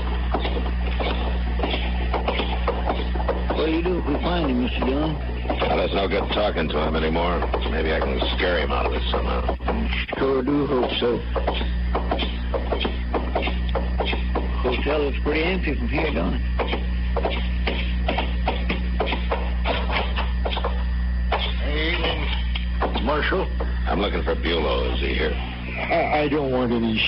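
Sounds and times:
footsteps walking: 0:00.0 - 0:14.8
low recording hum: 0:00.0 - 0:27.0.

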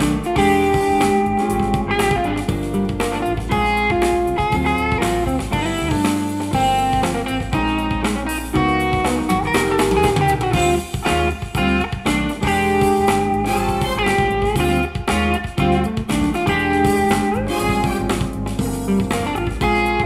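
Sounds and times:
electric guitar music with drums: 0:00.0 - 0:20.0.

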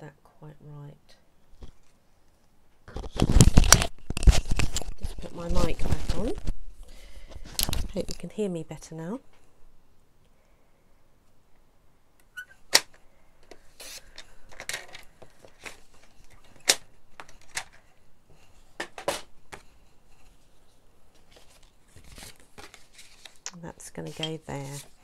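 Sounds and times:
paper rustling: 0:02.9 - 0:06.5, 0:18.5 - 0:23.4, 0:24.0 - 0:25.0.

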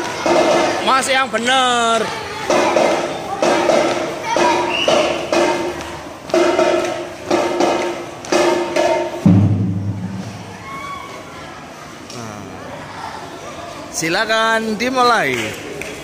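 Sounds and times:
drum band slow beat: 0:02.5 - 0:10.8
held low note: 0:09.3 - 0:10.7.

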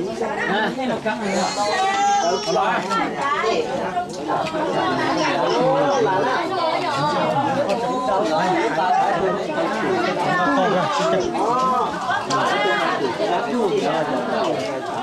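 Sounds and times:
people talking at once: 0:00.0 - 0:15.0.

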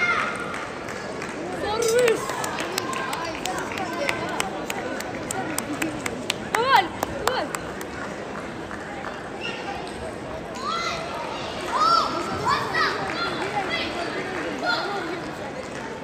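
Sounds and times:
murmur of voices: 0:00.0 - 0:16.0.

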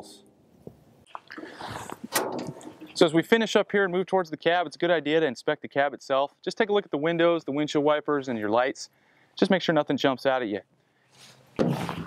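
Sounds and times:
latch click: 0:02.1 - 0:02.8.

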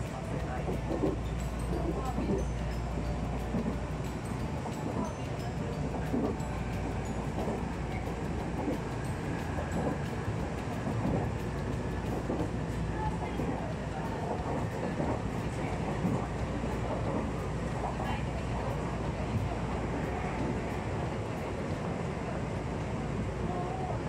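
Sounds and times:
train wheels rumbling: 0:00.0 - 0:23.4.

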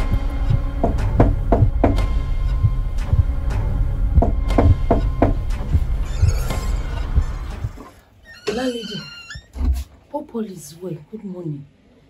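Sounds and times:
dull low thump: 0:00.0 - 0:07.9
woman calling out: 0:08.5 - 0:09.2.

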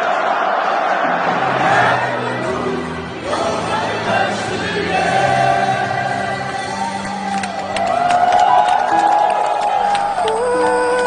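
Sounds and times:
crowd singing a chant: 0:00.0 - 0:06.8.

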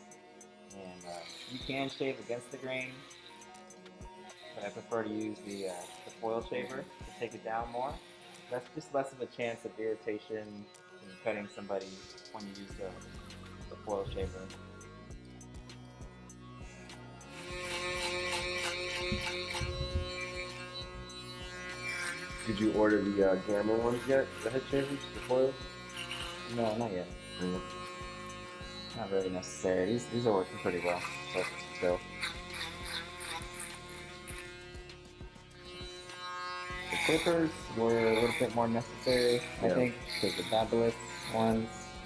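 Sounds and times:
background music: 0:00.0 - 0:42.0
electric shaver humming: 0:00.0 - 0:42.0
background music with a beat: 0:03.0 - 0:04.4, 0:12.1 - 0:18.0, 0:34.3 - 0:36.3.

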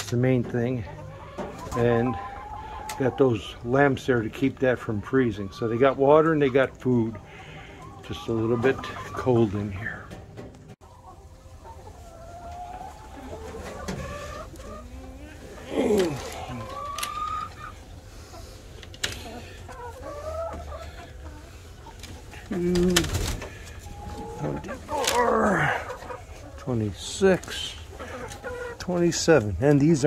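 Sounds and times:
hens clucking: 0:00.0 - 0:30.0.

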